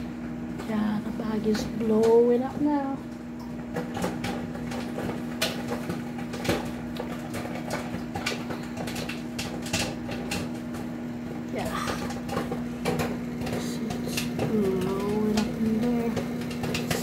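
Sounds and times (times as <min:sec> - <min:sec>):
microwave oven hum: 0:00.0 - 0:17.0
popcorn popping: 0:00.0 - 0:17.0.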